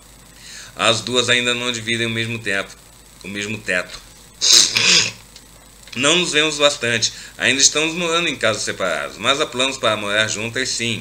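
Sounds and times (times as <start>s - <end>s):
man sneezing: 4.4s - 5.2s.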